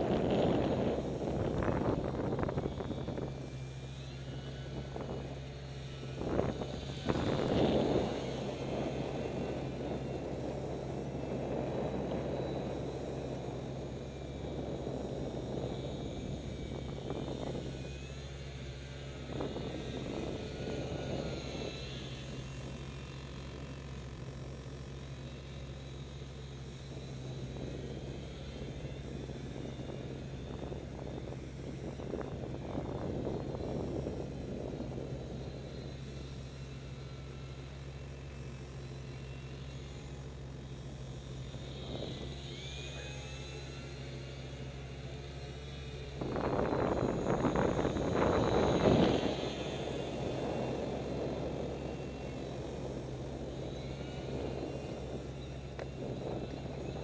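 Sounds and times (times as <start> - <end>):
wind buffeting microphone: 0.0 - 37.5, 39.5 - 57.0
small electric motor and propeller whine: 0.0 - 57.0
steady low hum: 0.0 - 57.0.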